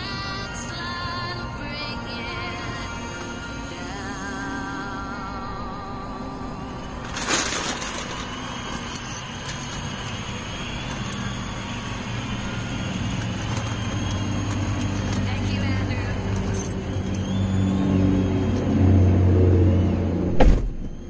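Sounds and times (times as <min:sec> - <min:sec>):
truck engine approaching: 0:00.0 - 0:21.0.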